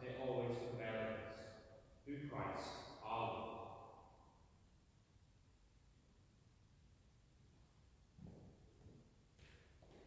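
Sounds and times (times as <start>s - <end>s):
man's voice echoing: 0.0s - 4.0s.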